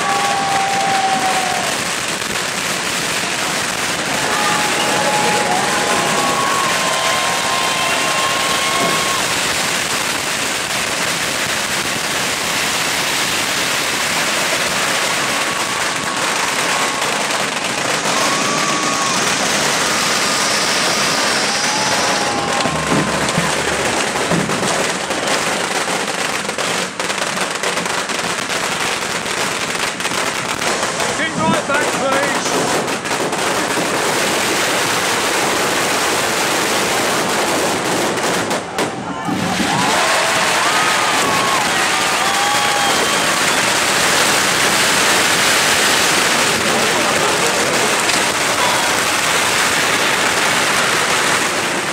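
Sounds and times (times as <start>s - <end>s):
crowd voices: 0.0s - 10.2s, 13.7s - 27.4s, 30.8s - 32.8s, 38.5s - 51.9s
firecracker bangs: 0.0s - 51.9s
fireworks hissing and crackling: 0.0s - 51.9s.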